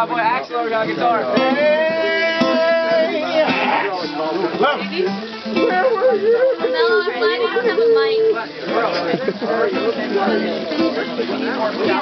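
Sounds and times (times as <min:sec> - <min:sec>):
acoustic guitar playing: 0:00.0 - 0:12.0
people talking over one another: 0:00.0 - 0:12.0.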